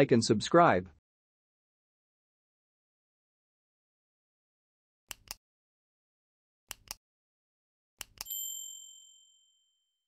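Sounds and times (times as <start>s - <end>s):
mouse click sound effects: 8.0s - 8.3s
notification bell ding: 8.2s - 9.8s.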